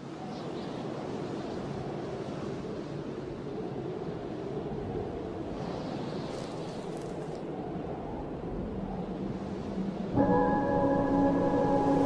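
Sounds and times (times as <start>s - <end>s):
low rushing wind: 0.0s - 12.0s.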